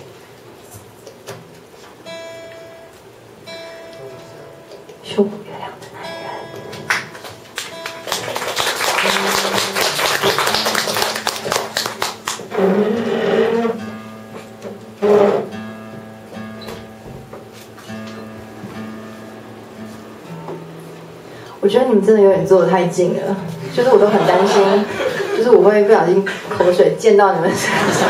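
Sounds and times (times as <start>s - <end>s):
live band playing: 6.2s - 15.7s.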